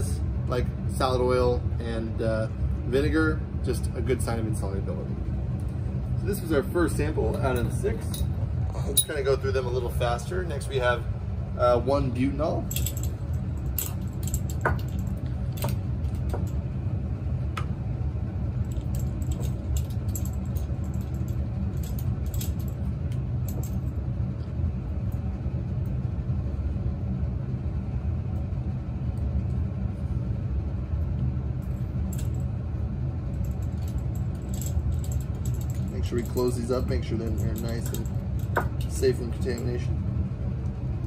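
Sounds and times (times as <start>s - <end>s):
ventilation fan rumble: 0.0s - 41.0s.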